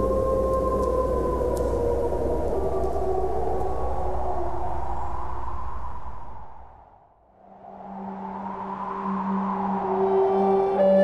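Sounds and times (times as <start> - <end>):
wolves howling: 0.0 - 5.4
steady low drone: 0.0 - 6.8.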